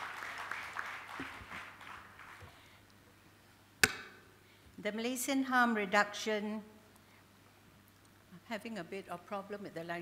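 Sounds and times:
sharp knock with ringing tail: 0:03.8 - 0:04.2
woman speaking: 0:04.8 - 0:06.7, 0:08.4 - 0:10.0.

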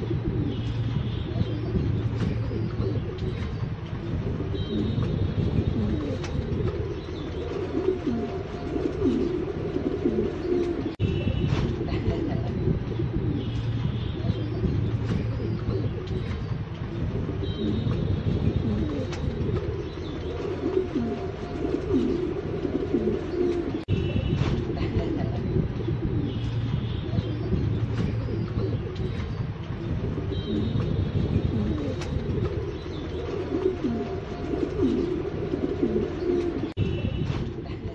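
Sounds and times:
pigeons cooing: 0:00.0 - 0:37.9.

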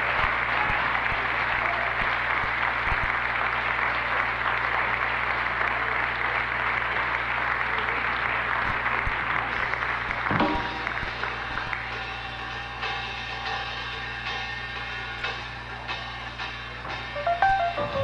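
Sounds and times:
audience applauding: 0:00.0 - 0:12.4.

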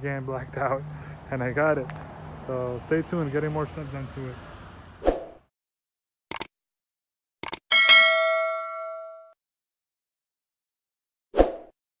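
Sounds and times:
bell ding: 0:07.7 - 0:09.4.

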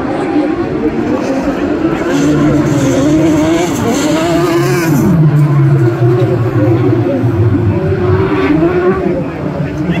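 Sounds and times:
racing car passing by: 0:00.0 - 0:10.0.

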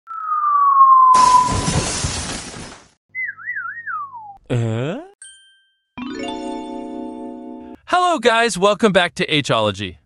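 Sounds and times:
wobbling whistle sliding down: 0:00.1 - 0:01.9, 0:03.1 - 0:04.4
cartoon explosion: 0:00.1 - 0:02.8.

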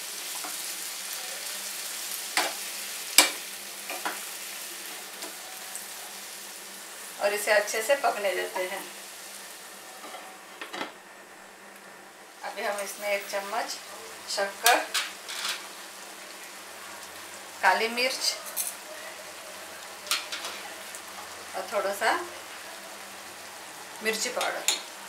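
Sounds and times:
vegetables sizzling in a pan: 0:00.0 - 0:25.0.

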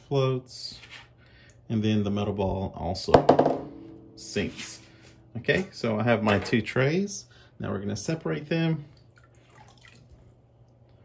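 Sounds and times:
water dripping into tub: 0:08.9 - 0:11.0.

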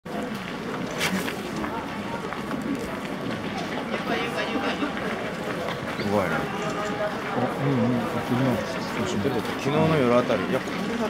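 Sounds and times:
crowd murmur: 0:00.1 - 0:11.0.

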